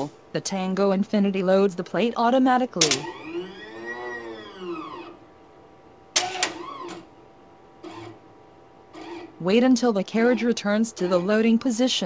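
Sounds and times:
motor whine rising and falling: 0:02.9 - 0:05.3.

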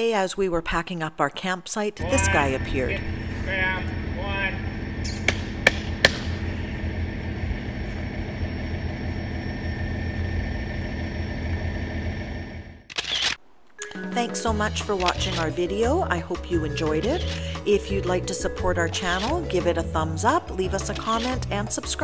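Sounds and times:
low hum: 0:02.0 - 0:22.0
sharp clicks: 0:12.9 - 0:14.0, 0:14.9 - 0:15.6.

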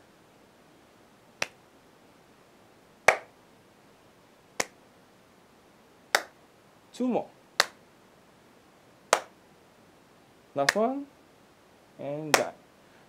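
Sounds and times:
sharp hand claps: 0:01.4 - 0:01.6, 0:03.1 - 0:03.4, 0:06.1 - 0:06.4, 0:07.6 - 0:07.8, 0:09.1 - 0:09.4, 0:10.6 - 0:10.9, 0:12.3 - 0:12.6.

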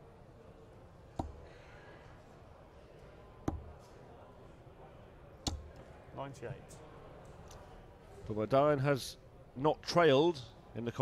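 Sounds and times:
dart knocking into dartboard: 0:01.2 - 0:01.5, 0:03.5 - 0:03.8, 0:05.5 - 0:05.7.

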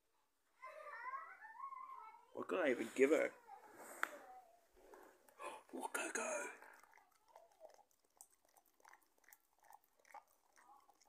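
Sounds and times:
pet chewing food: 0:05.2 - 0:11.0.

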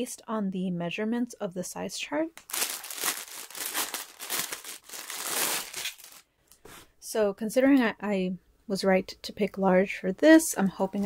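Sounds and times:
plastic bag crinkling: 0:02.4 - 0:06.2.

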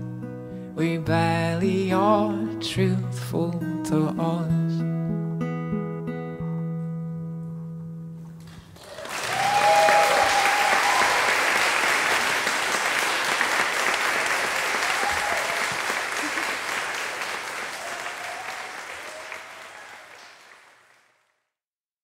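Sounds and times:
audience applauding: 0:08.5 - 0:21.4
whoops: 0:08.8 - 0:11.7, 0:14.6 - 0:16.7, 0:17.5 - 0:20.4.

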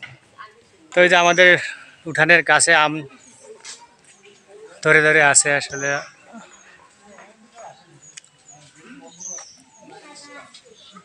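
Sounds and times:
distant voices: 0:00.0 - 0:11.0
small birds chirping: 0:00.0 - 0:11.0.

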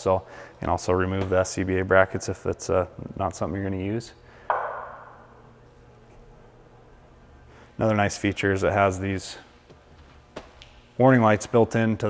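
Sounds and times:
metallic ping: 0:04.5 - 0:05.4.

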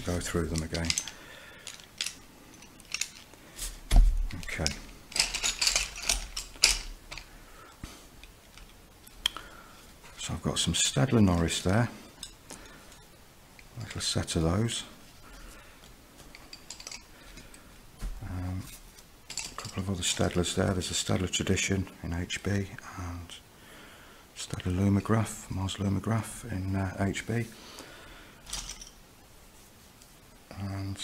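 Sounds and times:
pencils clicking together: 0:00.0 - 0:02.2, 0:04.4 - 0:07.3.

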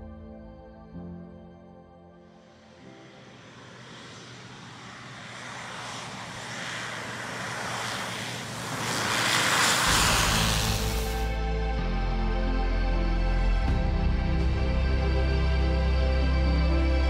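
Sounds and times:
background music: 0:00.0 - 0:03.8, 0:09.9 - 0:17.0
propeller aircraft engine: 0:02.5 - 0:12.7.

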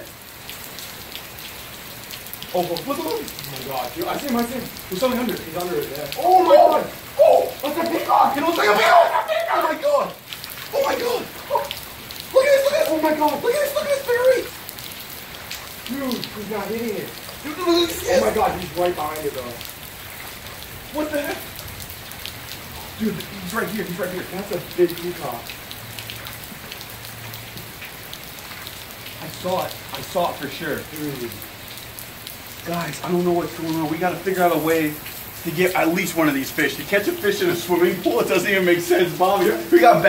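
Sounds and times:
rain falling on water: 0:00.0 - 0:40.0
excited voices: 0:04.0 - 0:14.6, 0:15.9 - 0:19.6, 0:35.6 - 0:40.0.

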